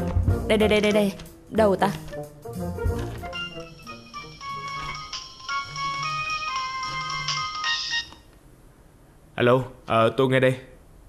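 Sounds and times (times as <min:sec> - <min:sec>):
phone ringtone melody: 0:03.3 - 0:08.2.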